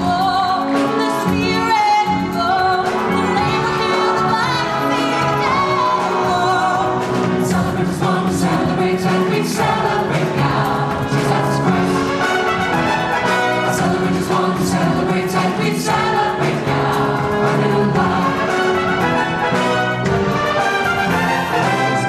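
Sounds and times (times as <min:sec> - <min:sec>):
mixed choir singing: 0:02.8 - 0:22.0.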